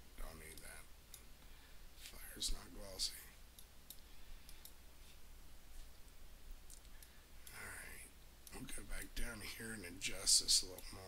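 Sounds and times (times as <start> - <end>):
low electrical hum: 0.0 - 11.0
computer mouse clicks: 3.6 - 4.8, 6.7 - 7.6.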